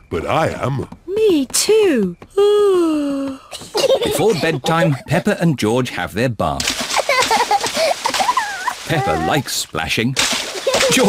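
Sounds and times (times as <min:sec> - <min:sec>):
bath water splashing: 0:06.5 - 0:11.0.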